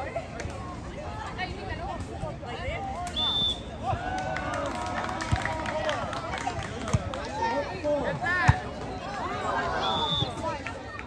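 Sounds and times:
crowd chatter and calling out: 0.0 - 11.0.

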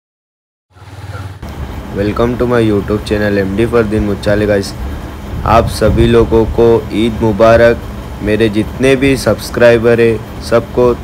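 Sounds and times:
low outdoor rumble: 0.7 - 11.0.

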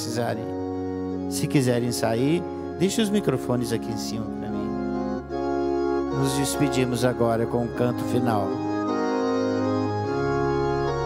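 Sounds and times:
church organ chords: 0.0 - 11.0.

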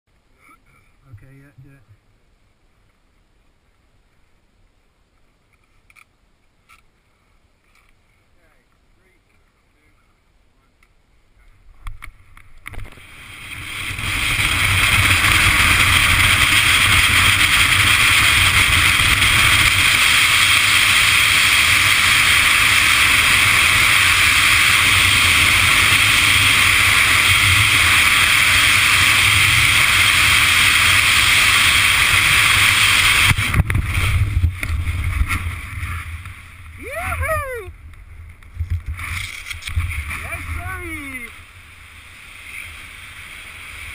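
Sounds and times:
airflow rushing over microphone: 11.6 - 43.9
parachute opening: 12.6 - 43.9.

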